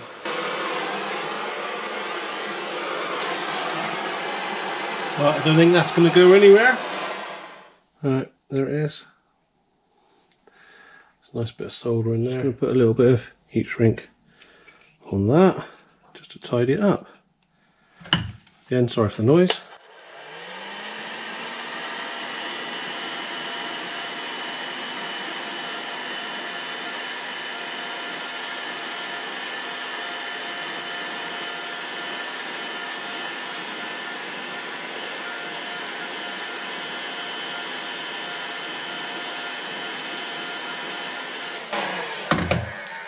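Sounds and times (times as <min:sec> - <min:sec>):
heat gun fan running: 0:00.0 - 0:07.7, 0:19.7 - 0:43.0
knock: 0:42.3 - 0:42.7.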